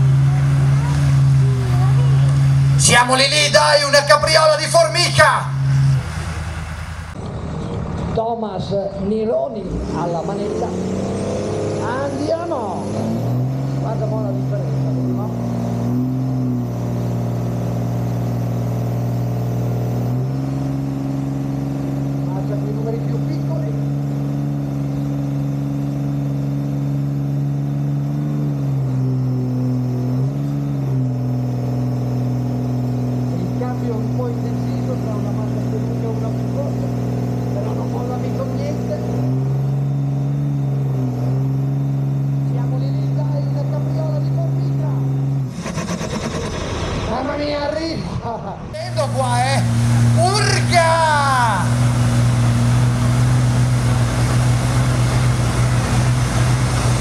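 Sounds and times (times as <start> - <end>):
pickup truck engine at full throttle: 0.0 - 57.0.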